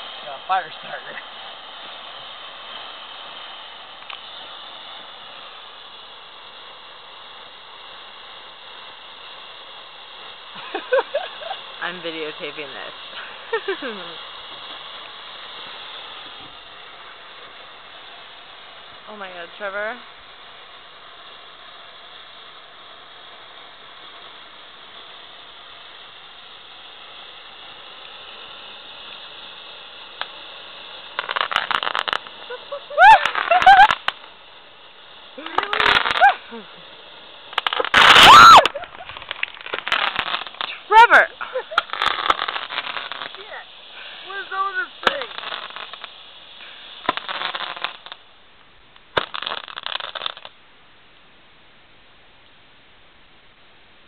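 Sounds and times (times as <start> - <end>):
fireworks going off: 0.0 - 54.0
steady hiss: 0.0 - 54.0
people screaming and shrieking: 37.9 - 39.0.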